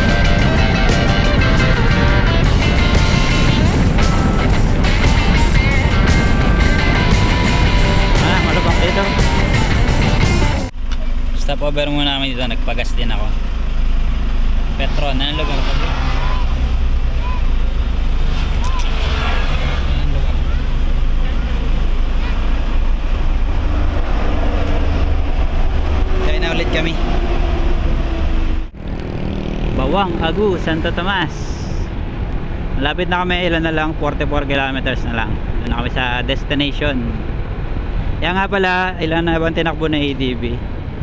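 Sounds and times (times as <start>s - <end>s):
steady low rumble: 0.0s - 29.1s
voices talking: 4.4s - 13.5s, 14.6s - 23.1s, 26.0s - 27.4s, 29.7s - 32.0s.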